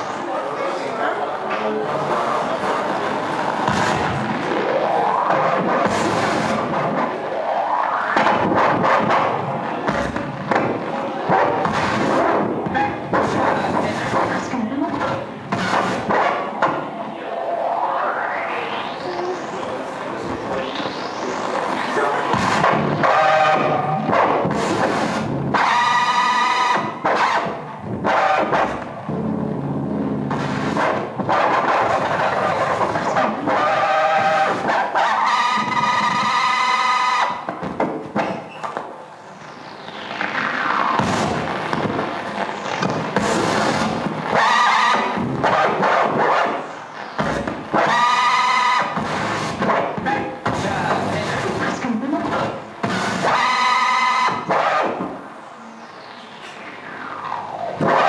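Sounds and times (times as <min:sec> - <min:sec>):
loud squealing tones: 0:01.8 - 0:58.0.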